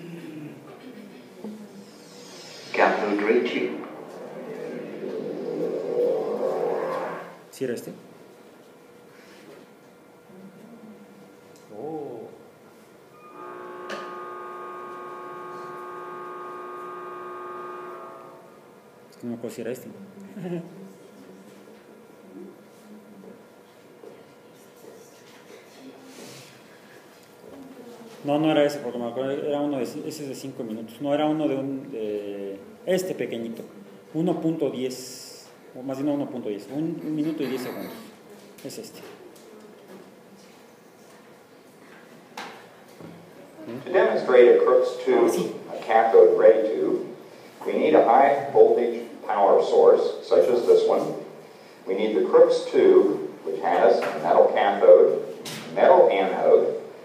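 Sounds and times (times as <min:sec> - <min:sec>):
sustained electronic chord: 0:13.2 - 0:18.9.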